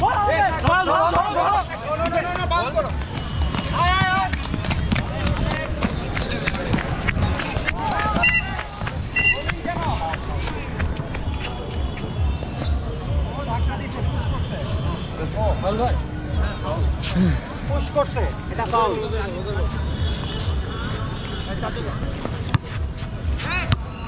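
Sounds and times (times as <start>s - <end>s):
players shouting: 0.0s - 12.8s
roller skate wheels rolling on concrete: 3.2s - 12.2s.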